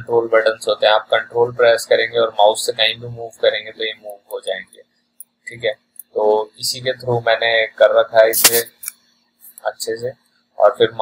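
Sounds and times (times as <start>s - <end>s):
man talking: 0.0s - 4.8s, 5.5s - 8.9s, 9.6s - 11.0s
sharp loud click: 8.4s - 9.0s.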